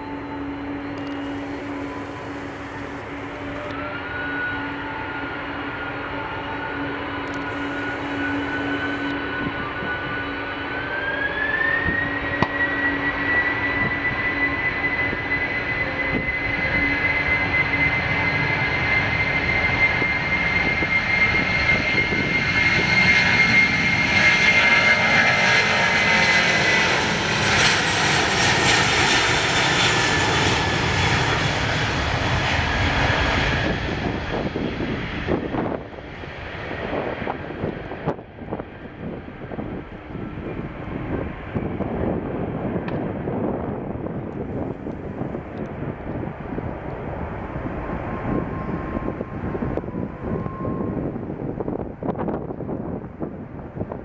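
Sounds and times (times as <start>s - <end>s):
jet engines whining at takeoff: 0.0s - 54.0s.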